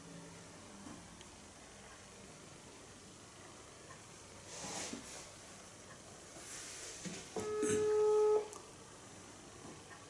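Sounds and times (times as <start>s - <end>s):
phone ringback beep: 7.4s - 8.5s.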